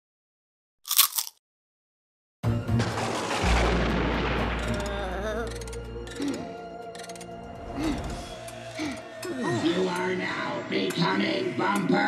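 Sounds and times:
music: 0:02.4 - 0:12.0
deep boom with rumble: 0:02.8 - 0:05.2.

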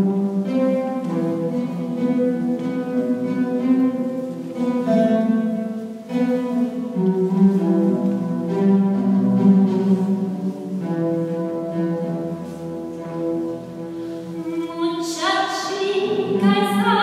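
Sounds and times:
oud playing a slow melody: 0:00.0 - 0:14.8.

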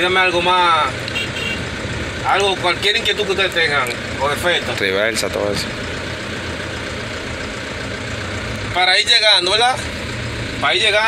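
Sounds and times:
truck engine humming: 0:00.0 - 0:11.0.

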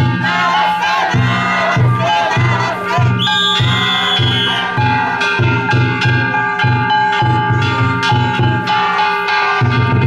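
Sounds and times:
big drum beating: 0:00.0 - 0:10.0
crowd shouting calls: 0:00.0 - 0:10.0
long high whistle: 0:03.2 - 0:04.7.

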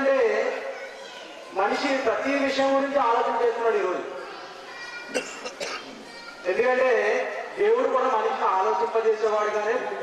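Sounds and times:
person coughing: 0:05.1 - 0:06.0.

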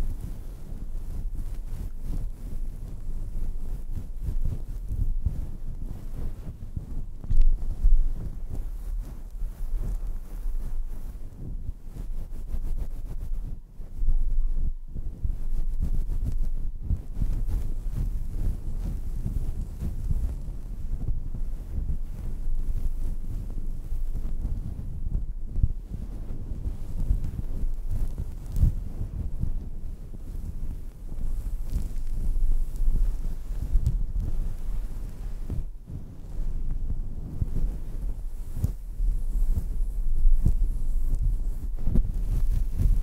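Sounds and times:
fingers rubbing microphone windscreen: 0:00.0 - 0:43.0.

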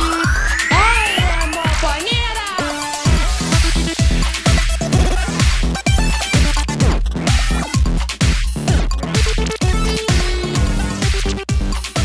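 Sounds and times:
electro house music: 0:00.0 - 0:12.0.

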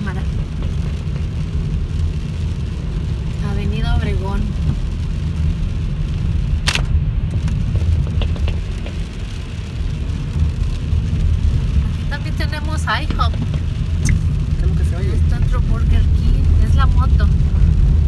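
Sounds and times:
engine and road noise: 0:00.0 - 0:18.0.

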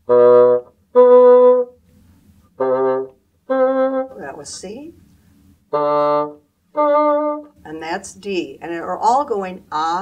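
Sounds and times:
bassoon playing held notes: 0:00.0 - 0:01.9, 0:02.5 - 0:04.4, 0:05.7 - 0:07.6.

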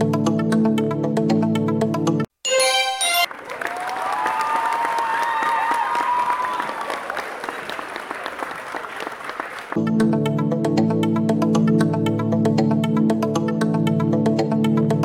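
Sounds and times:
crowd applause and cheering: 0:02.6 - 0:09.8.

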